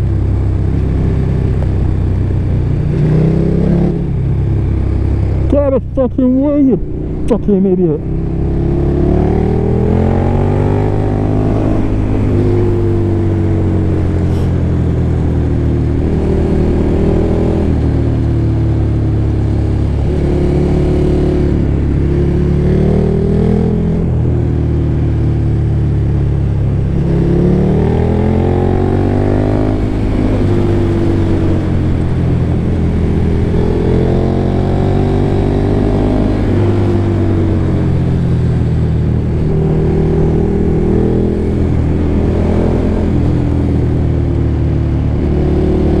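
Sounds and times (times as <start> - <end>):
motorcycle engine revving: 0.0 - 46.0
wind and tyre rush: 0.0 - 46.0.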